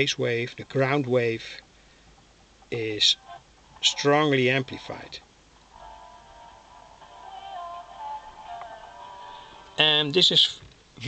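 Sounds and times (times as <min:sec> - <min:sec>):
thin tinny radio music with singing: 0:02.4 - 0:11.0.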